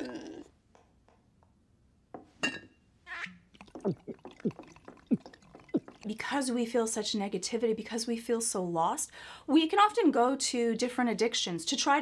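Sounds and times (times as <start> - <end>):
liquid pouring splash: 3.5 - 6.4.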